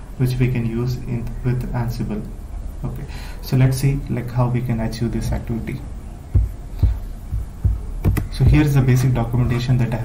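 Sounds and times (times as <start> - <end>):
faint low hum: 0.0 - 10.0
dull low thumps: 5.2 - 8.7.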